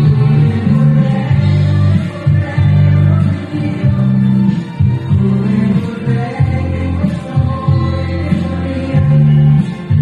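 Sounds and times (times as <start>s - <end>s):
heavy bass line: 0.0s - 10.0s
sung vocal: 0.0s - 10.0s.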